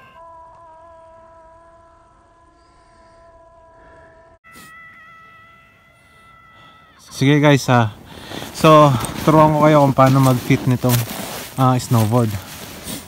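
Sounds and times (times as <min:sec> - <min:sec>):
faint pitched tone: 0:00.0 - 0:07.5
higher held tone: 0:00.0 - 0:07.7.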